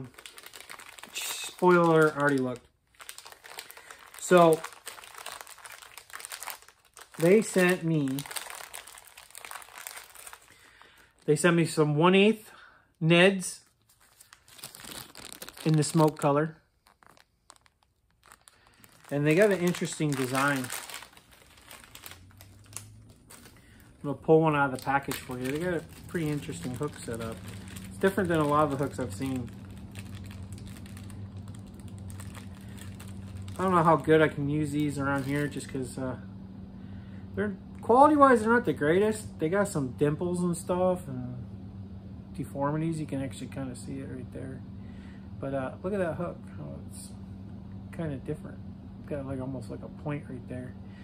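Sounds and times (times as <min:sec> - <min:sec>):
plastic packaging crinkling: 0:00.0 - 0:11.4, 0:13.6 - 0:35.8
steady low hum: 0:00.0 - 0:51.0.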